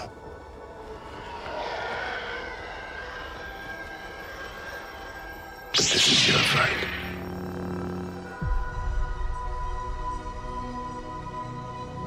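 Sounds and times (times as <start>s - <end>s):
rushing drone: 0.0s - 11.4s.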